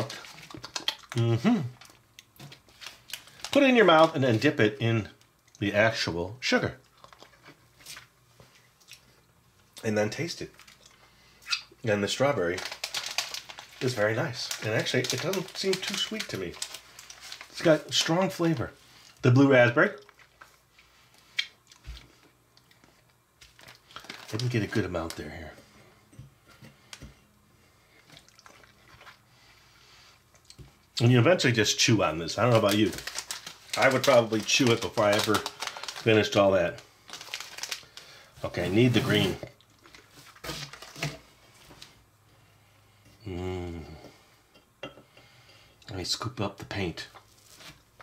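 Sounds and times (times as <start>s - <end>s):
mouth sounds tasting candy: 0.0s - 2.4s, 43.2s - 44.0s
lip smacks: 0.4s - 1.3s, 21.2s - 22.9s.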